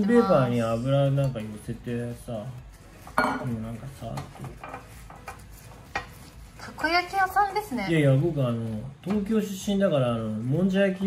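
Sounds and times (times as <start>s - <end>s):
paper wiping a pan: 1.4s - 7.8s, 9.7s - 11.0s
cookware knocks and clinks: 3.1s - 6.2s.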